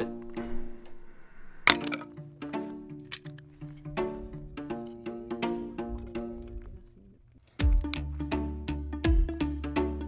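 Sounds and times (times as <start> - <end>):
plucked and bowed string music: 0.0 - 10.0.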